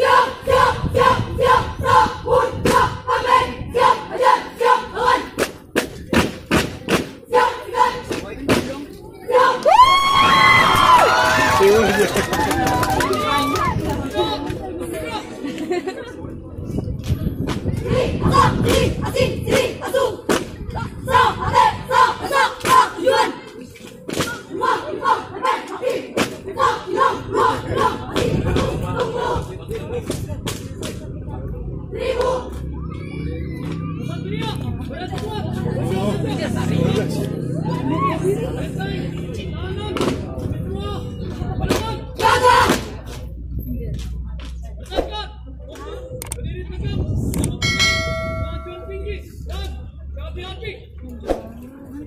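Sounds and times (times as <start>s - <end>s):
women shouting chant in unison: 0.0s - 5.4s, 21.1s - 23.4s, 24.3s - 28.3s
crowd murmur: 0.0s - 52.0s
notification bell ringing: 47.6s - 49.2s.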